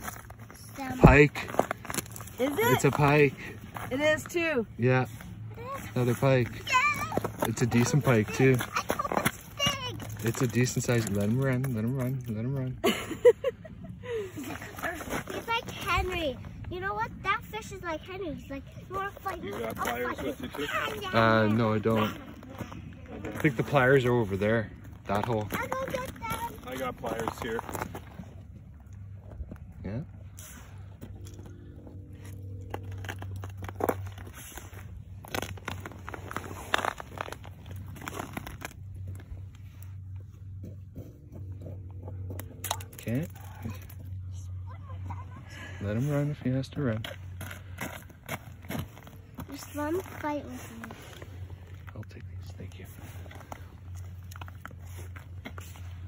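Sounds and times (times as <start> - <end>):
crunching on snowy ice: 0.0 - 4.4, 32.1 - 40.6
steady low hum: 0.0 - 56.0
steady low rumble: 0.0 - 56.0.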